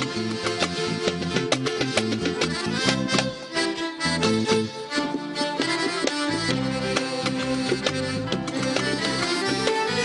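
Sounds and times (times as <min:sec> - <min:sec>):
accordion: 0:00.0 - 0:10.0
steady beat: 0:00.0 - 0:10.0
violin section playing melody: 0:00.0 - 0:10.0.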